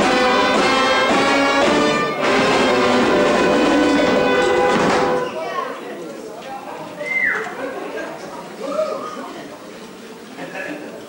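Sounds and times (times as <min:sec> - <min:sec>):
brass band playing held chords: 0:00.0 - 0:05.6.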